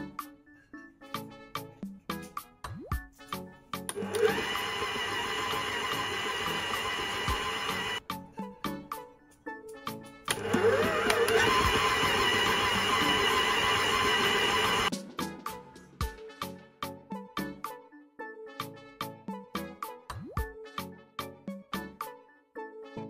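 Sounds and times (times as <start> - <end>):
stand mixer motor kneading dough: 3.9 - 8.0, 10.3 - 14.9.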